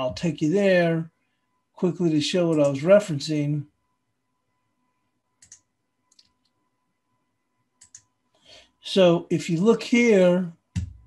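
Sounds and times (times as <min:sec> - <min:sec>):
computer mouse clicks: 0:05.4 - 0:06.6, 0:07.8 - 0:08.1.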